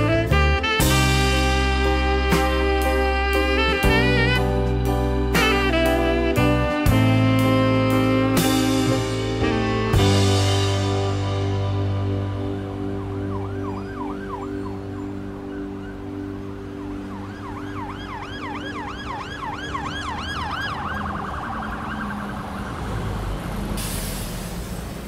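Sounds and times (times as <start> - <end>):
background music: 0.0 - 22.8
siren yelping and warbling: 12.9 - 23.1.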